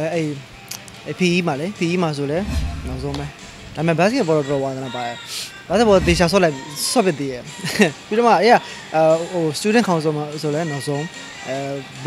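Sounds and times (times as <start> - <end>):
low thump: 2.4 - 4.0
man speaking: 5.7 - 6.6.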